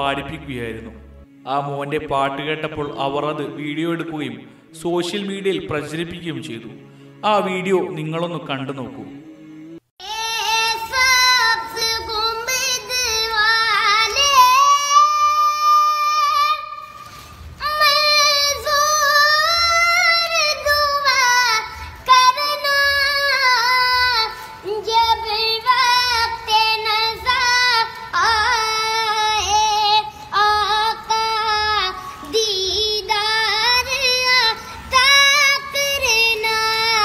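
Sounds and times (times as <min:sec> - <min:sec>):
boy singing: 0:10.0 - 0:17.0, 0:17.6 - 0:37.0.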